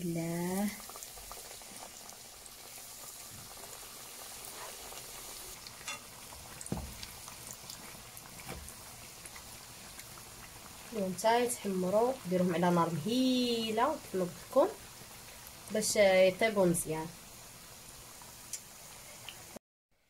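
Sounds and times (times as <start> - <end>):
oil sizzling and crackling: 0.0 - 19.6.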